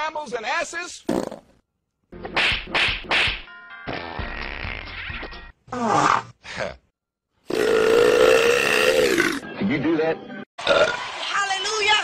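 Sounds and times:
music: 2.1 - 5.6, 9.4 - 10.5
cartoon whacks: 2.2 - 3.5
long loud burp: 7.4 - 9.4, 10.6 - 11.0.

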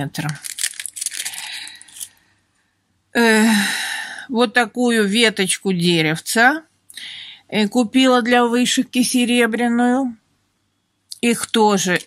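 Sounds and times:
plastic packet crinkling: 0.0 - 2.2, 11.4 - 12.0
metal pendants clinking: 0.4 - 2.1.

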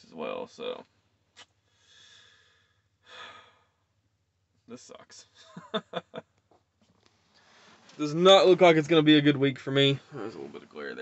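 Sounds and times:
man speaking: 0.0 - 0.9, 4.7 - 5.4, 8.0 - 11.0
man sighing: 1.8 - 3.8.

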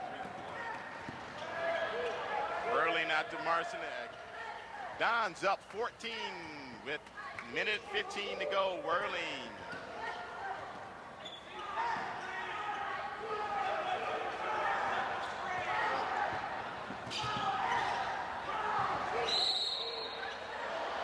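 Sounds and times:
players and crowd voices: 0.0 - 21.0
referee's whistle: 19.2 - 20.4.

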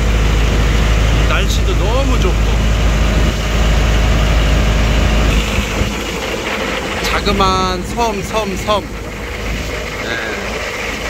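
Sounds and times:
boat engine droning: 0.0 - 11.0.

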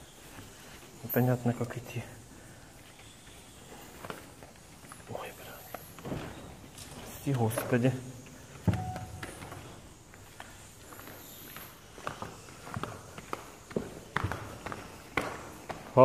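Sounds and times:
flip-flop footsteps on wood and rock: 2.8 - 16.0.

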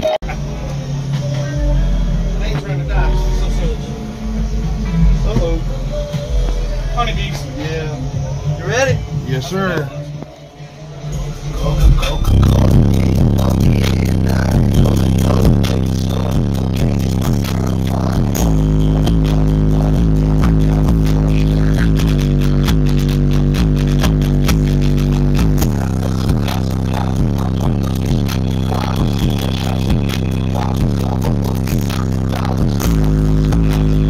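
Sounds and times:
bass-heavy music through subwoofers: 0.0 - 34.0.

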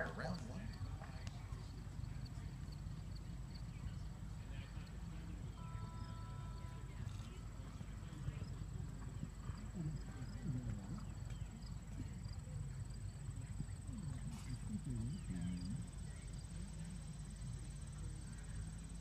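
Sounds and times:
faint voices: 0.0 - 19.0.

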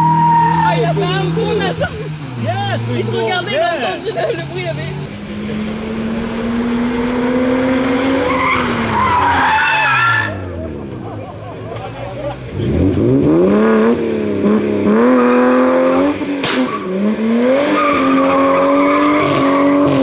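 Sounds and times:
tyres squealing: 0.0 - 12.8, 16.5 - 20.0
car engine revving: 0.0 - 20.0
short sharp crack: 16.4 - 16.7.

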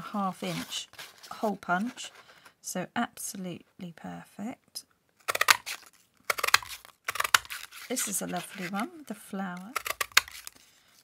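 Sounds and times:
paper crinkling: 5.2 - 11.0.

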